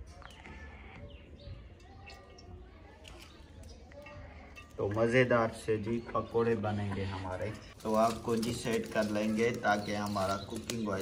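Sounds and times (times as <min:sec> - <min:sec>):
bird chirps and calls: 0:00.2 - 0:04.7, 0:09.0 - 0:11.0.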